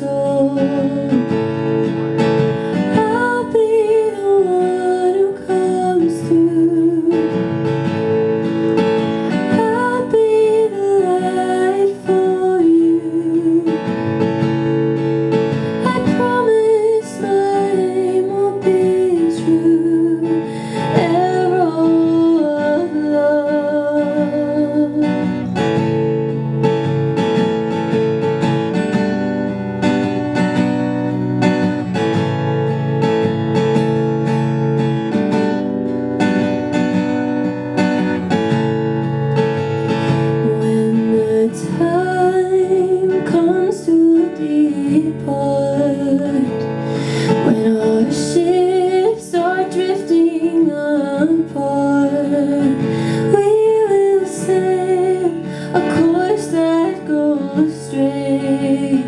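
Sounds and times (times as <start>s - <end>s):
young woman singing: 0.0s - 26.9s, 39.6s - 59.0s
acoustic guitar strumming: 0.0s - 59.0s.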